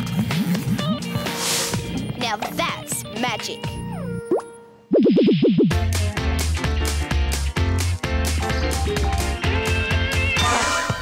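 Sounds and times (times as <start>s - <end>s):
upbeat music with heavy beat: 0.0s - 3.9s, 5.3s - 11.0s
cartoon music: 0.0s - 5.9s
wobbling swooping tone: 3.8s - 5.8s.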